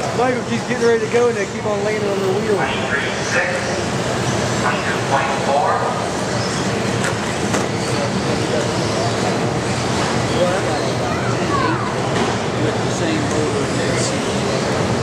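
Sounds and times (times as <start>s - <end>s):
busy hall with voices: 0.0s - 15.0s.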